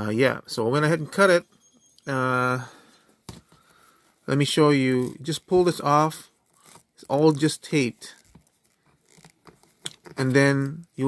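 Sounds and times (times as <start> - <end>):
cloth rustling and tape peeling: 2.9 - 11.0.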